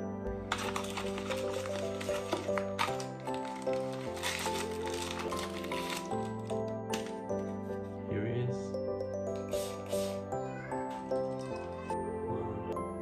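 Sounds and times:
background music: 0.0 - 13.0
plastic packaging crinkling: 0.5 - 7.2.

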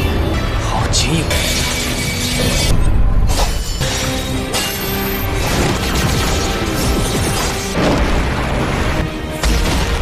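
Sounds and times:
background music sustained tones: 0.0 - 10.0.

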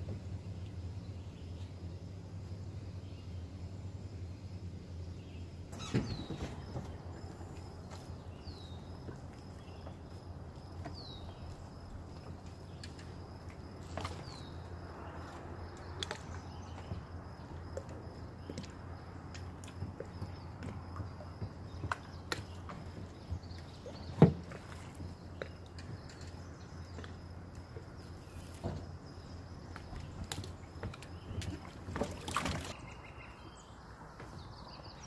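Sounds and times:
low outdoor background: 0.0 - 35.0
knocks and bumps in a boat: 5.7 - 33.0.

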